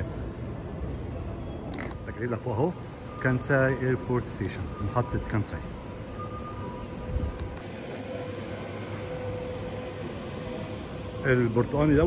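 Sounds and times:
station concourse hum and hiss: 0.0 - 12.0.

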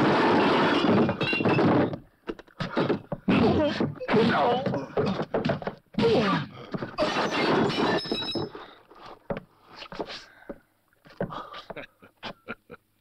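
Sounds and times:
knocks and clatters: 0.2 - 4.0
glass bottles and crockery crashing: 0.4 - 2.0.

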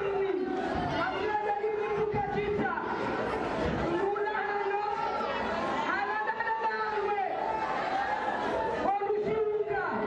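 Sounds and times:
chattering voices: 0.0 - 10.0.

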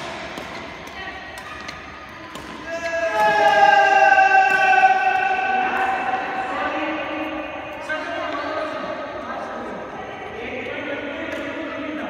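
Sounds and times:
badminton rackets striking shuttlecocks: 0.0 - 6.4.

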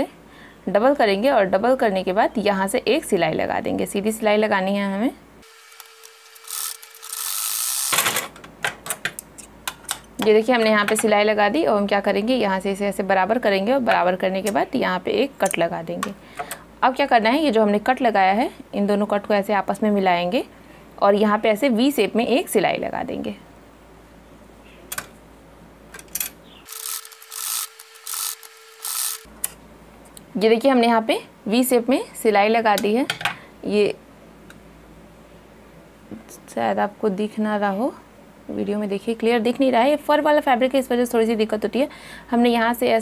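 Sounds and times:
sewing machine running: 5.4 - 8.2, 26.7 - 29.3.

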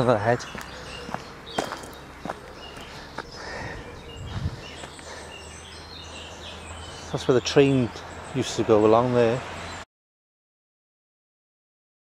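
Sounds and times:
footsteps on dirt path: 0.0 - 6.3.

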